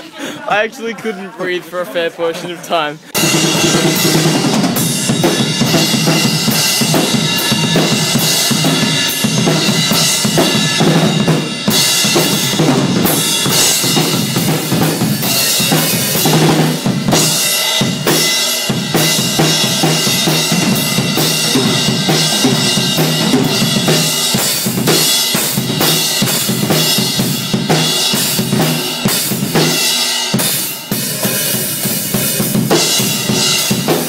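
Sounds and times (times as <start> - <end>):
crash and ride cymbals: 3.2 - 34.0.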